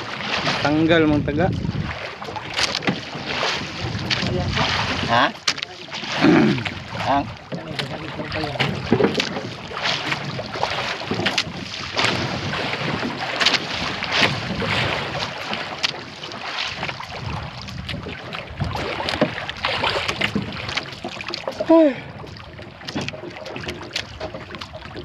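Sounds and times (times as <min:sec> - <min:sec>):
wind buffeting microphone: 0:00.0 - 0:05.3, 0:06.2 - 0:15.8, 0:16.8 - 0:25.0
water splashing around boat hull: 0:00.0 - 0:25.0.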